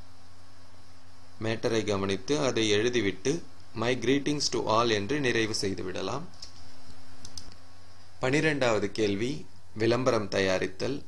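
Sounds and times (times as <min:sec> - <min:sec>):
low electrical hum: 0:00.0 - 0:11.0
computer keyboard clicks: 0:07.2 - 0:07.6.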